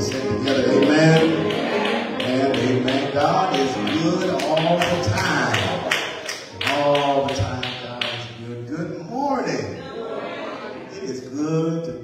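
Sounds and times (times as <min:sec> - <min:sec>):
steady tapping beat: 0:00.0 - 0:08.4.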